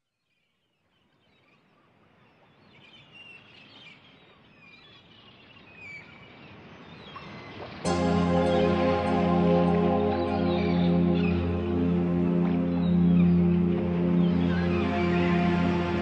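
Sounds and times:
music: 0:07.9 - 0:16.0
rushing outdoor ambience: 0:07.9 - 0:16.0.

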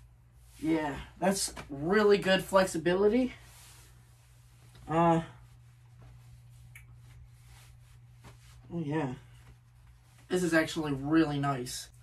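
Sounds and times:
steady low hum: 0:00.0 - 0:12.0
faint soft clicks: 0:06.6 - 0:07.1.

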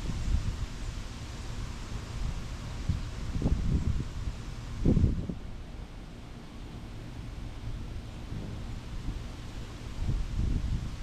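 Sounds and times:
faint rustle of leaves: 0:00.0 - 0:11.0
wind buffeting microphone: 0:02.2 - 0:05.7, 0:07.7 - 0:11.0.

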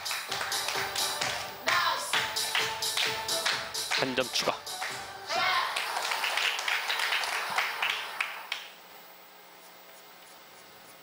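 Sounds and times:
audience applause: 0:00.0 - 0:08.7.

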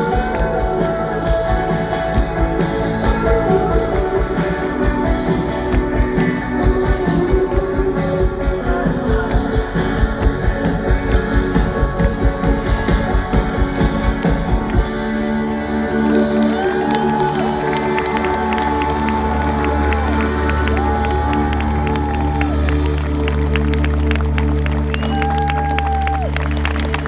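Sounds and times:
crowd cheering and clapping: 0:00.0 - 0:27.0.

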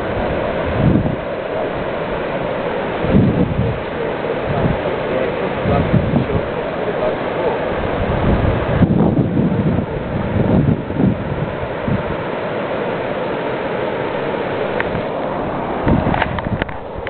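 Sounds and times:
wind buffeting microphone: 0:00.0 - 0:12.6, 0:14.7 - 0:17.0.

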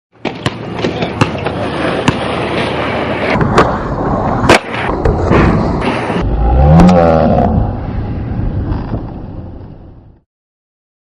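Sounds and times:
skateboard wheels rolling on asphalt: 0:00.2 - 0:06.3, 0:07.8 - 0:10.2.

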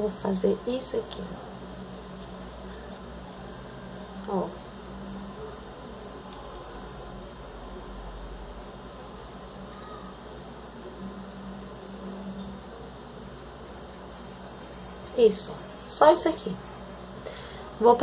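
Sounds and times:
background hiss: 0:00.0 - 0:18.0
high-pitched whine: 0:00.0 - 0:18.0.

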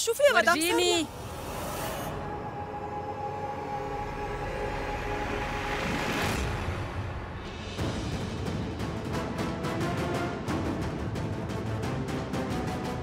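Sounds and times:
dramatic sustained tones: 0:01.1 - 0:07.7.

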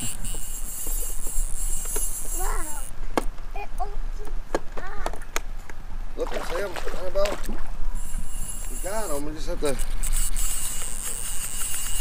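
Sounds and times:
fish splashing at water surface: 0:06.2 - 0:07.7.

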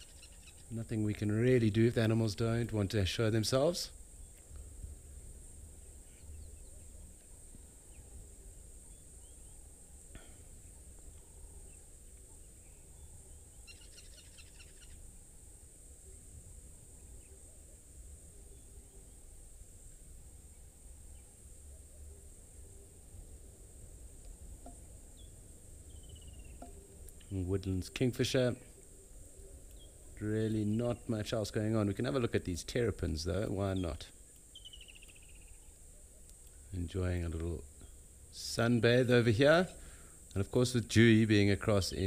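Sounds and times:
bird calls: 0:00.0 - 0:00.7, 0:11.7 - 0:15.0, 0:33.7 - 0:36.3.

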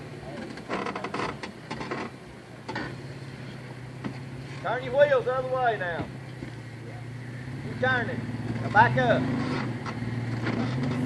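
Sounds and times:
truck engine running low: 0:00.0 - 0:11.0.

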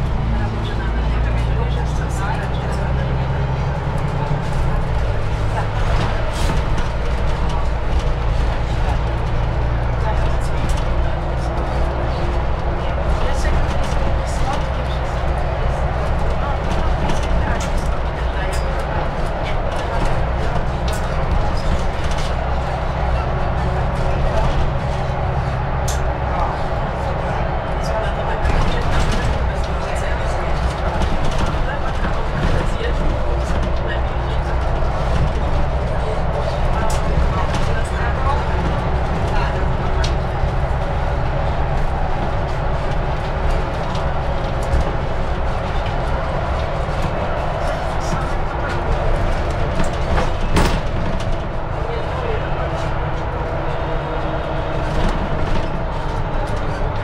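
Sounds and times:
bus diesel engine drone: 0:00.0 - 0:57.0
road noise: 0:00.0 - 0:57.0.

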